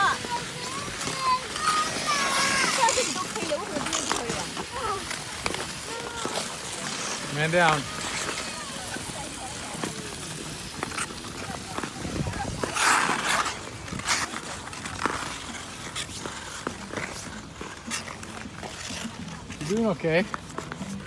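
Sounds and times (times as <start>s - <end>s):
faint voices: 0.0s - 21.0s
ice skate blades clicking: 0.0s - 21.0s
skate scraping on ice: 0.0s - 21.0s.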